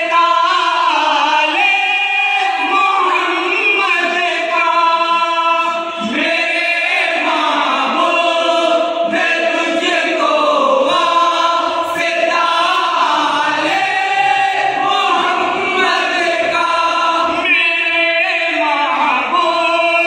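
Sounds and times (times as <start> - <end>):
men singing together unaccompanied: 0.0 - 20.0.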